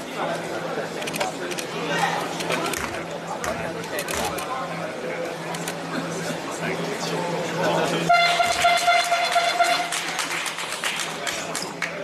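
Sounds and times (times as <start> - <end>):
gym crowd noise: 0.0 - 12.0
scoreboard horn: 8.1 - 10.2.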